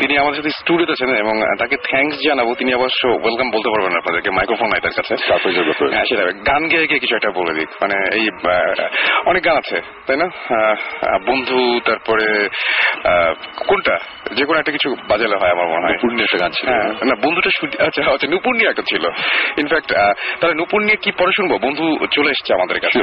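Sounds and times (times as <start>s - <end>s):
radio talk show speech: 0.0s - 23.0s.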